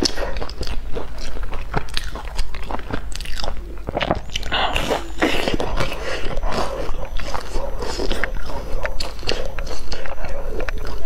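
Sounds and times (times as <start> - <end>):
crunchy biting and chewing: 0.0 - 11.0.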